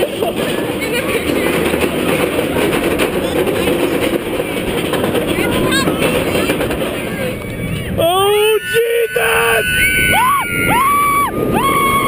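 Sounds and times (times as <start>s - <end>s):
roller coaster rapid clacking: 0.0s - 12.0s.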